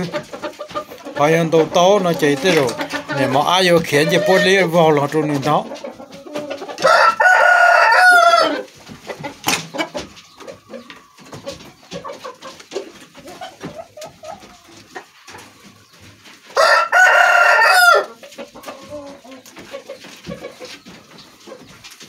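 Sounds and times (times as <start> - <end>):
soft clucks: 0.0 - 4.6, 9.0 - 15.7
rooster crowing: 6.8 - 8.6, 16.6 - 18.1.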